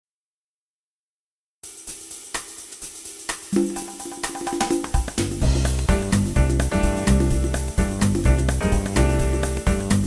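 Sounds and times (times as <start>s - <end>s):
drum kit with cymbal and hi-hat: 1.6s - 10.0s
smooth jazz backing track: 4.8s - 10.0s.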